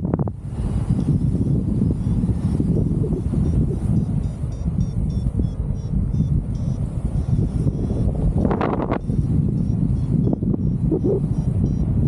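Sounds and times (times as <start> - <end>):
wind rushing over microphone: 0.0 - 12.0
variometer beeping in short pulses: 2.9 - 11.9.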